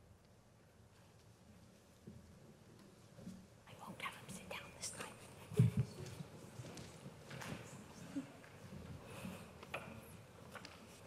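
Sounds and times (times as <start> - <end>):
quiet whispering: 1.2 - 11.0.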